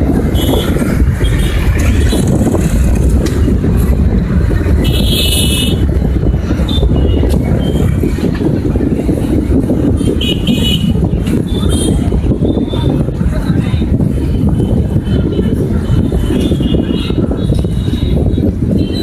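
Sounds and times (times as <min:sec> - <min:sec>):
street traffic rumble: 0:00.0 - 0:19.0.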